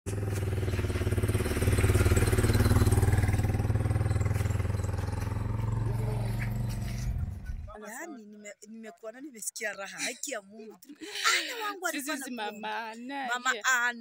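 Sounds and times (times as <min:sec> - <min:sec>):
vehicle engine running: 0:00.1 - 0:07.8.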